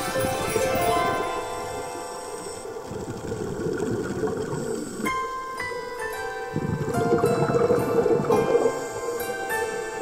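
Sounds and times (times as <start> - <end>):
faint music tones: 0.0 - 10.0
low underwater noise: 0.8 - 10.0.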